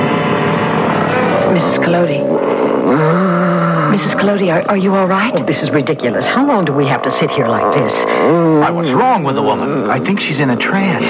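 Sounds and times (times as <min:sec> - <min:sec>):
steady high tone: 0:00.0 - 0:11.0
woman moaning: 0:01.4 - 0:08.8.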